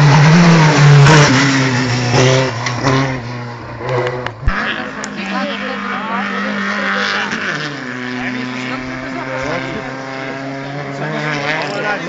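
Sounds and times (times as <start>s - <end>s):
race car engine revving: 0.0s - 12.0s.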